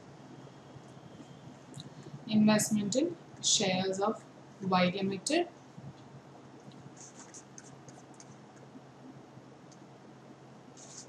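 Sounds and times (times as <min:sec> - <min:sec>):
low steady hum: 0:00.0 - 0:11.0
stylus scratching tablet screen: 0:06.9 - 0:08.7, 0:10.8 - 0:11.0.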